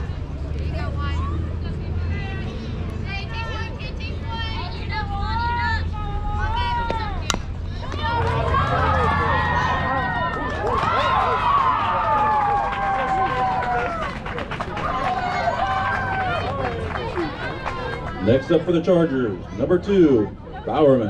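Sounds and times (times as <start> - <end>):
high voices yelling and cheering: 2.1 - 20.9
bat cracking against ball: 6.9 - 8.1.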